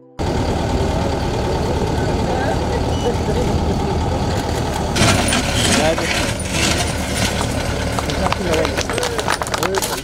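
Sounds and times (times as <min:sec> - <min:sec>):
diesel engine running: 0:00.0 - 0:10.0
people's voices: 0:00.2 - 0:10.0.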